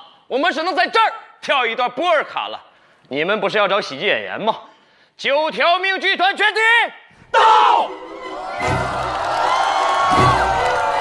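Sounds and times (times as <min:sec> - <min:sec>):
audience cheering: 0:07.4 - 0:11.0
group of voices shouting: 0:07.4 - 0:11.0.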